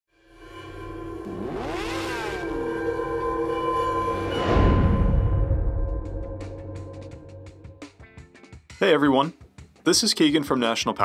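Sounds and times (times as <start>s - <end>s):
held drone: 0.2s - 7.8s
sustained synth tones: 0.2s - 7.9s.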